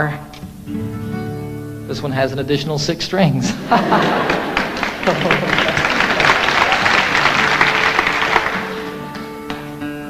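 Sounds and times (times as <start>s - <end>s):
acoustic guitar notes: 0.0s - 10.0s
audience laughing and clapping: 3.5s - 9.4s.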